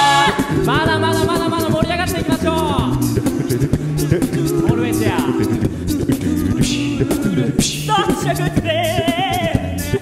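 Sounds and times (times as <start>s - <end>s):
a cappella group singing: 0.0s - 10.0s
vocal percussion: 0.0s - 10.0s.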